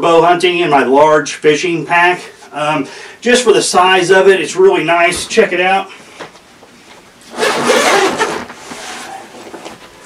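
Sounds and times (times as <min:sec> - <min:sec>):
backpack zipper pulled open: 0:07.3 - 0:08.6
fabric rustling: 0:07.3 - 0:10.0.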